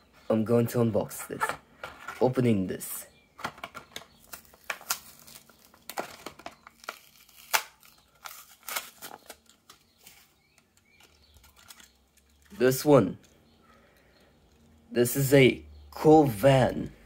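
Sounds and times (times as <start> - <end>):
plastic packaging crinkling and crackling: 3.4 - 12.6.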